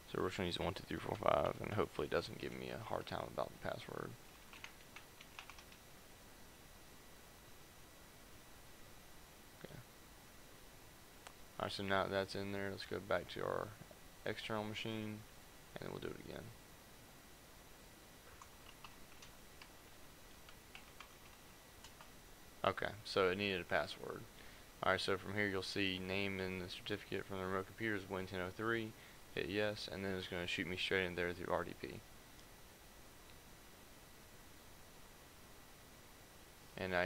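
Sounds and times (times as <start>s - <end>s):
keyboard keys tapped quickly: 4.3s - 5.8s, 18.3s - 19.8s, 20.4s - 22.1s.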